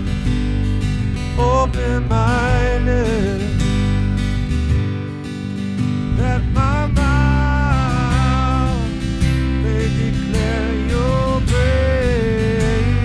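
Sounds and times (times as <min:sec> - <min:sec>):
acoustic guitars strumming: 0:00.0 - 0:13.0
man singing: 0:01.3 - 0:03.9, 0:06.1 - 0:13.0.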